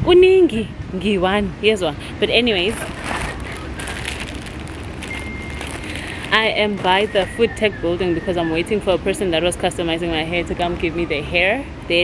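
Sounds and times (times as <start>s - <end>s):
outdoor low rumble: 0.0s - 11.9s.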